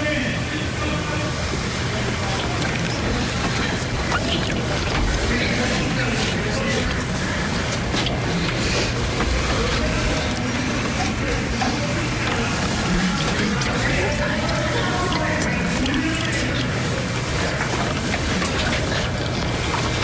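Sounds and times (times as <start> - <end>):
indistinct voices: 0.0 - 20.0.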